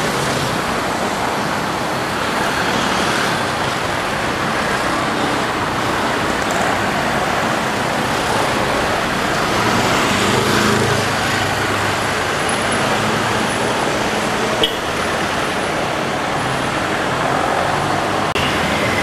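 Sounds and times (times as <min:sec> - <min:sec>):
road traffic noise: 0:00.0 - 0:19.0.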